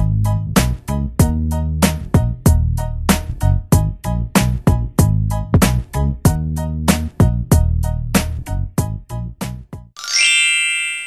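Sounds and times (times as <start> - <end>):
background music with struck notes: 0.0 - 11.0
bright chime ringing: 10.0 - 11.0.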